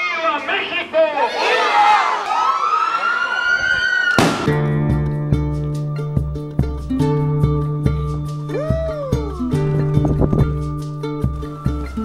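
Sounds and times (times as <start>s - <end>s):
sharp crack: 4.1s - 4.8s
acoustic guitar music: 4.5s - 12.0s.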